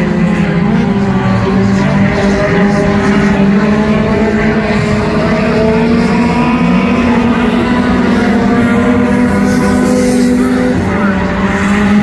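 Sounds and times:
race car engines running hard: 0.0s - 12.0s.

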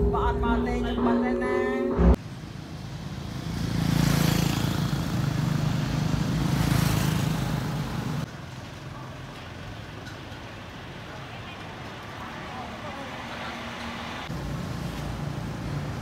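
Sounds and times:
street noise: 0.0s - 16.0s
motorbike engine passing: 2.4s - 8.3s.

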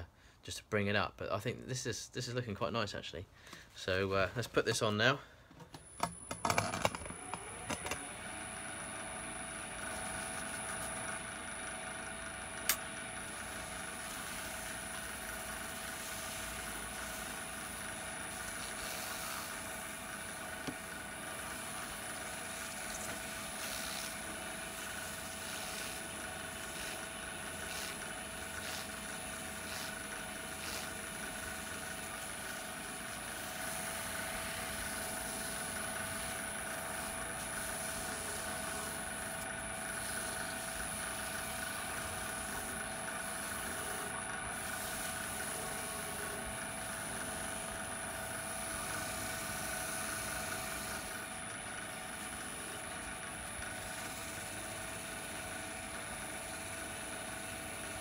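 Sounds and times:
wood lathe motor hum: 7.0s - 58.0s.

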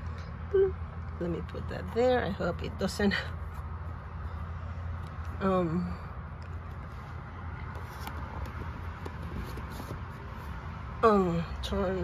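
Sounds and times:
low background hum: 0.0s - 12.0s
cardboard box handling: 7.6s - 10.6s.

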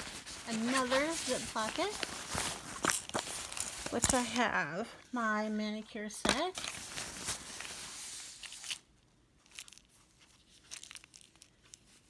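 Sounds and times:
fabric bag rustling: 0.0s - 4.5s, 6.6s - 8.8s.

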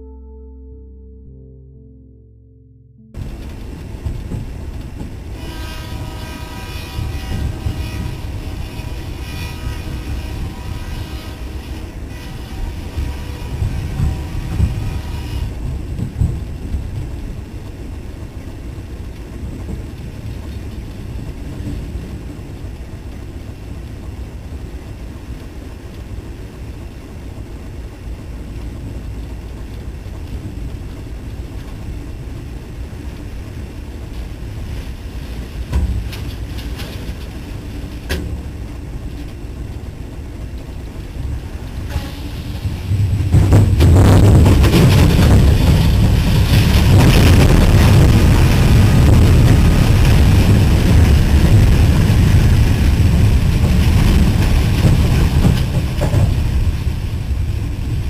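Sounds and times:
train rumble: 3.2s - 58.0s
train horn blast: 5.3s - 15.7s, 41.8s - 42.8s.

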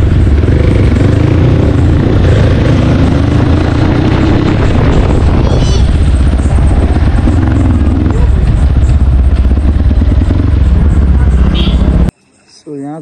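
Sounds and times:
dirt bike engine running: 0.0s - 12.1s
wind buffeting microphone: 0.0s - 12.1s.

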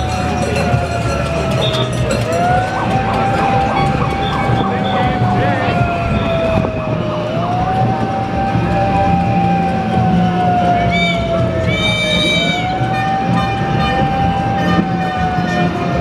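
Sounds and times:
siren wailing: 0.0s - 16.0s
street noise: 0.0s - 16.0s
voices: 0.0s - 16.0s.

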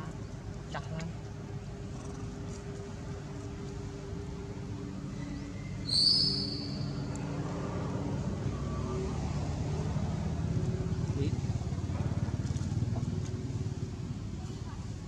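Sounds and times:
vehicle engine rumbling: 0.0s - 15.0s.

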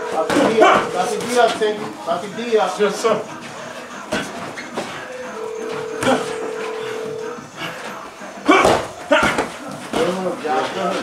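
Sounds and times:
steady tone: 0.0s - 1.5s, 5.4s - 7.6s.

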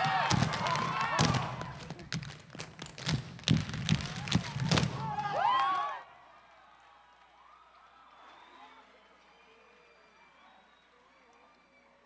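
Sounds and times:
dance shoes striking stage floor: 0.0s - 5.4s.

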